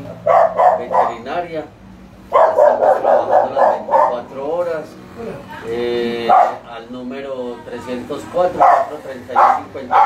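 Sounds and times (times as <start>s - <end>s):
dog barking: 0.2s - 1.3s, 2.3s - 4.3s, 6.3s - 6.6s, 8.6s - 10.0s.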